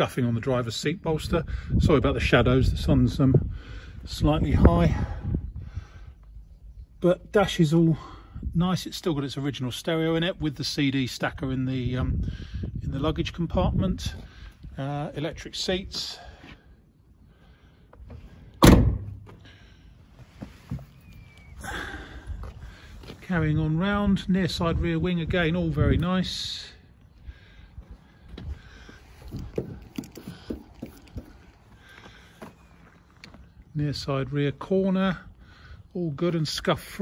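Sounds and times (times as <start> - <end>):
man talking: 12.8 - 16.3, 23.1 - 26.9, 33.7 - 35.3, 35.9 - 37.0
car door shutting thunk: 18.6 - 19.4.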